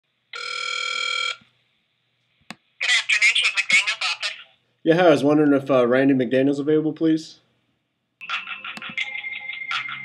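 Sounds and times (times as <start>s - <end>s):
electronic telephone ringing tone: 0.4s - 1.4s, 8.2s - 10.0s
voice over telephone line: 2.8s - 4.5s.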